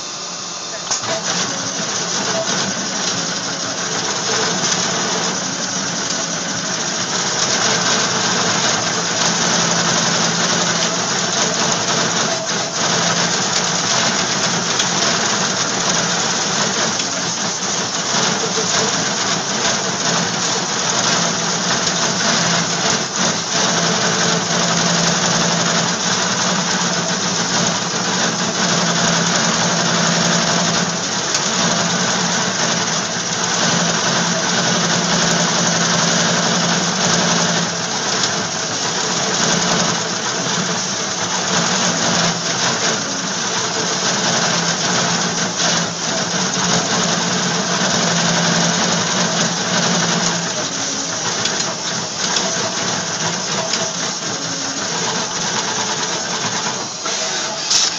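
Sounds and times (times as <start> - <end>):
loud machinery humming: 0.0 - 57.9.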